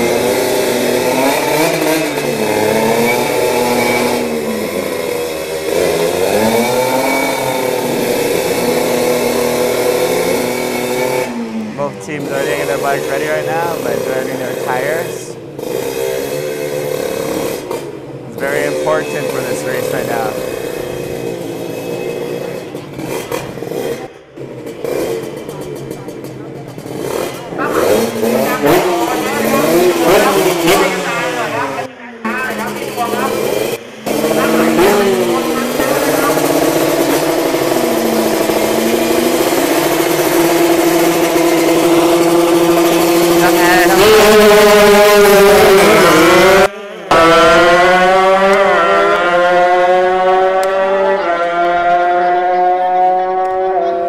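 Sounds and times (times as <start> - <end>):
motorcycle engines revving: 0.0 - 54.0.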